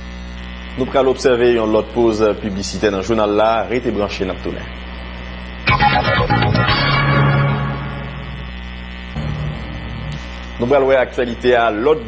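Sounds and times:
electrical mains hum: 0:00.0 - 0:12.0
low sustained tone: 0:05.7 - 0:10.6.

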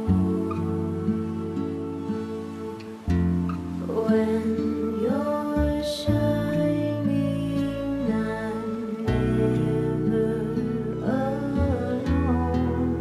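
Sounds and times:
plucked acoustic guitar: 0:00.0 - 0:13.0
person singing lullaby: 0:03.7 - 0:13.0.

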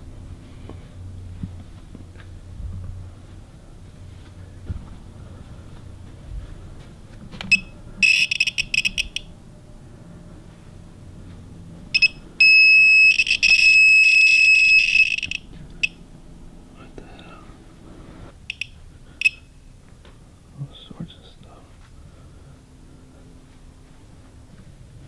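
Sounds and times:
crackling buzzing chatter: 0:00.0 - 0:25.0
loud crackling buzz: 0:07.3 - 0:16.6
steady high beep: 0:07.5 - 0:09.3, 0:11.9 - 0:16.0, 0:18.5 - 0:19.5.

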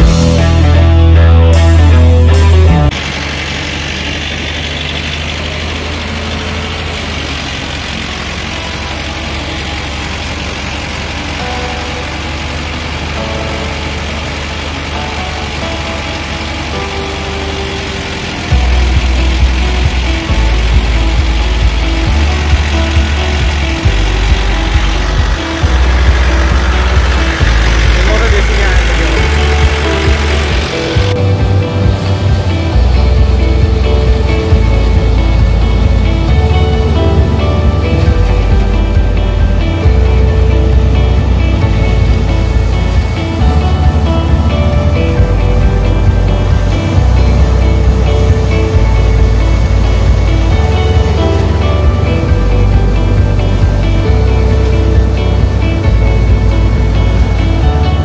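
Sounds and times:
irregular low rumbling: 0:00.0 - 0:58.0
tractor diesel engine: 0:00.0 - 0:58.0
thresher machine running: 0:01.4 - 0:58.0.

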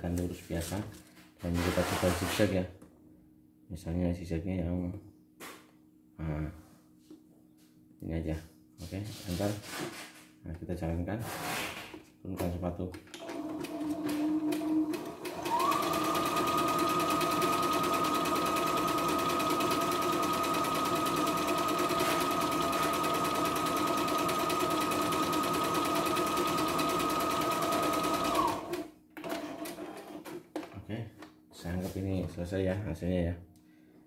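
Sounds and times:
sewing machine motor whine: 0:13.2 - 0:28.8.

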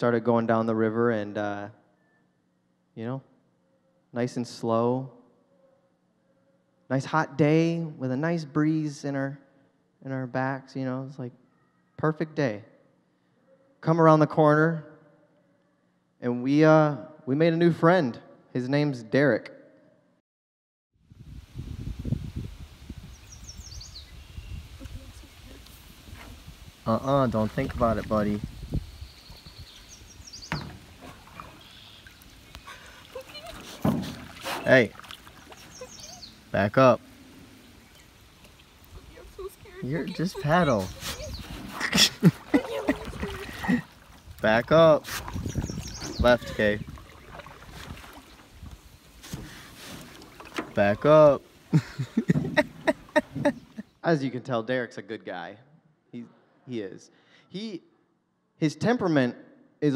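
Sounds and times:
wind buffeting microphone: 0:21.1 - 0:31.6, 0:37.5 - 0:49.0
water noise: 0:21.2 - 0:53.9
small bird chirping: 0:23.1 - 0:25.6, 0:28.5 - 0:30.8, 0:31.4 - 0:33.5, 0:35.4 - 0:36.6, 0:37.6 - 0:41.6, 0:45.4 - 0:47.4.

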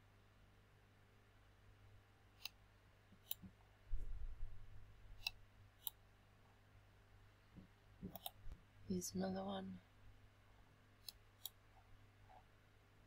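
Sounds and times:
low thump and rumble: 0:03.9 - 0:04.7.

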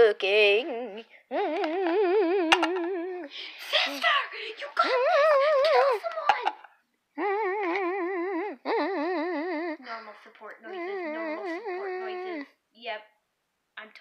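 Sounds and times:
child humming: 0:00.5 - 0:03.3, 0:07.2 - 0:10.0, 0:10.6 - 0:12.6.

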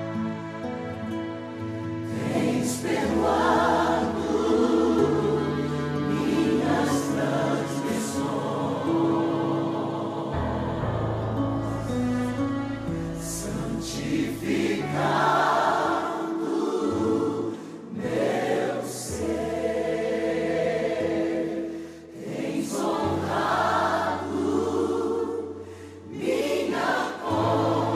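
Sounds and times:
choir singing: 0:00.0 - 0:27.9
sustained low accompaniment notes: 0:10.3 - 0:14.9.

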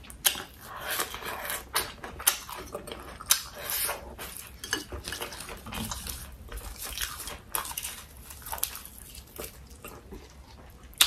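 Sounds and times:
chewing and crunching food: 0:00.0 - 0:11.0.

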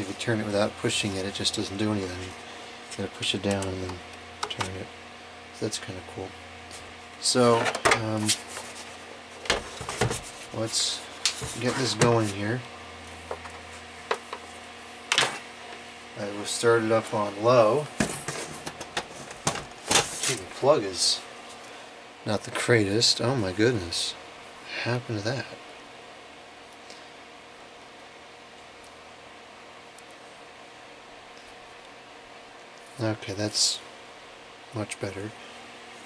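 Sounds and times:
low room hum: 0:00.0 - 0:36.0.

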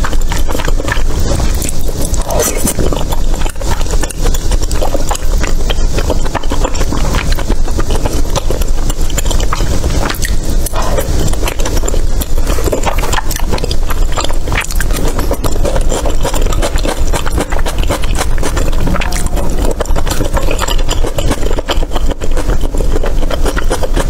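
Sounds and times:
wet chewing mouth sounds: 0:00.0 - 0:24.0.

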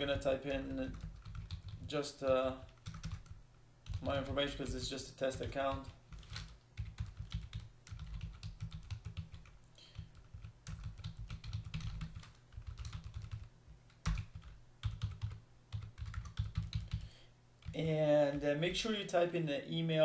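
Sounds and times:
typing on computer keyboard: 0:00.1 - 0:04.3, 0:05.4 - 0:17.8.

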